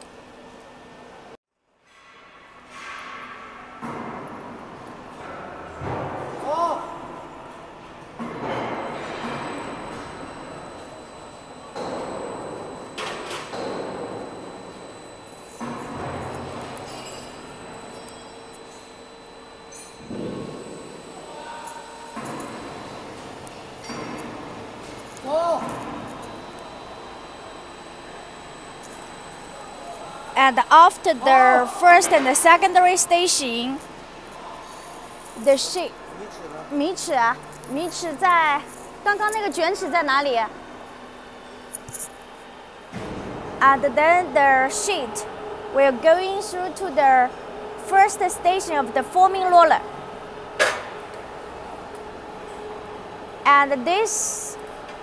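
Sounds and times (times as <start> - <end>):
roll forming machine running: 8.3 - 36.7
faint high whine: 8.3 - 42.8.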